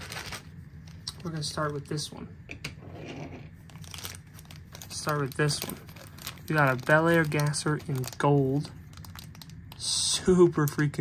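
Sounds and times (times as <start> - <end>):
plastic bag crinkling: 0.0 - 2.1, 3.6 - 11.0.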